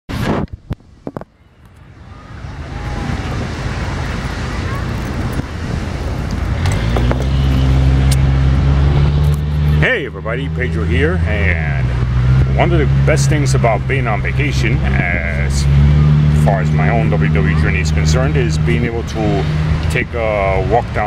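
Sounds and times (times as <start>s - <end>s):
rush of outdoor noise: 0.1s - 21.0s
low engine drone: 1.9s - 21.0s.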